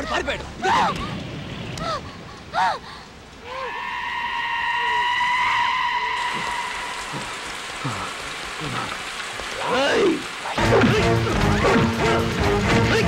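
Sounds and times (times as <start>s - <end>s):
steady hiss: 0.9s - 11.2s.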